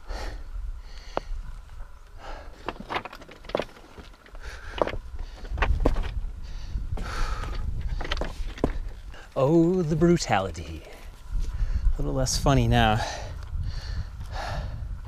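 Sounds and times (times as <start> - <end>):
person panting heavily: 0.0 - 1.4, 2.2 - 2.7, 6.4 - 8.2, 13.0 - 15.0
wind rumble on microphone: 0.0 - 2.7, 4.3 - 15.0.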